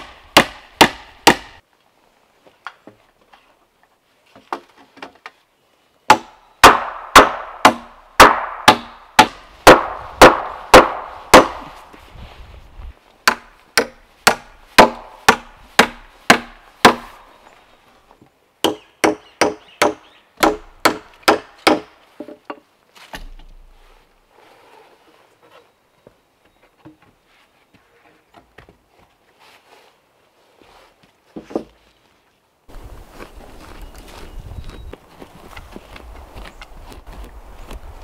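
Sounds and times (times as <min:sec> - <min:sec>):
hammer striking log: 0:00.0 - 0:01.6, 0:06.1 - 0:11.8, 0:13.2 - 0:17.1, 0:18.6 - 0:21.9.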